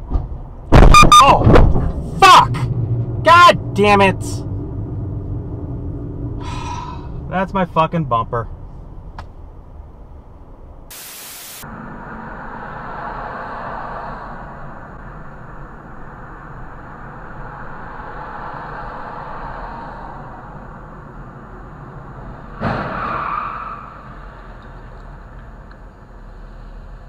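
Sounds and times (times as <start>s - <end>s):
car road and engine noise: 0.0s - 27.0s
static hiss: 10.9s - 11.6s.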